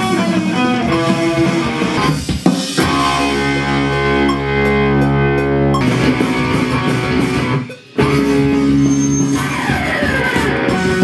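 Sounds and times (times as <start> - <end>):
electric guitar music: 0.0 - 11.0.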